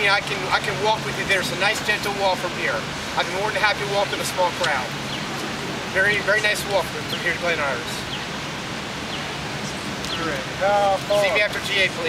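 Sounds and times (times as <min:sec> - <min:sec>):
city hum: 0:00.0 - 0:12.0.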